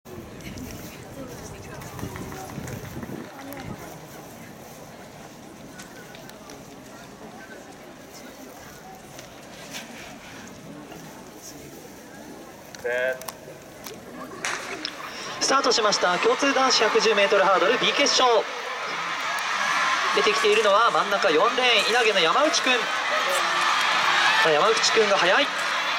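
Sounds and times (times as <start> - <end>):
crowd chatter: 0.0 - 25.9
man announcing: 15.4 - 18.7, 20.0 - 23.4, 24.3 - 25.6.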